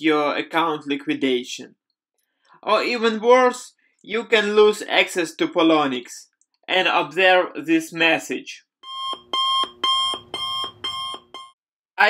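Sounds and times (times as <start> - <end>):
electronic alarm beeping: 8.8 - 11.6.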